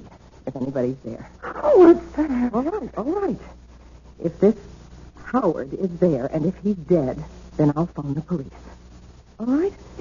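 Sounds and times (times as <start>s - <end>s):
woman wailing and sobbing: 1.4s - 2.8s.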